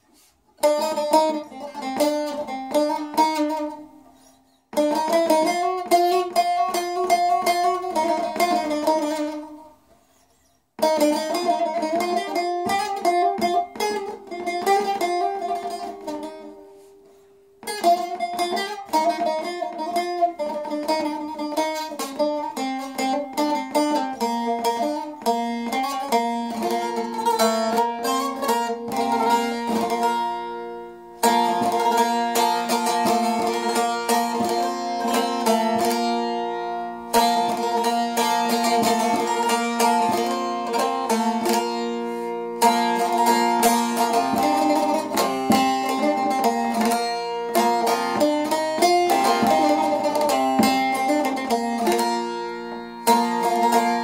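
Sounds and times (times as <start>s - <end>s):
plucked long-necked lute melody: 0.0s - 54.0s.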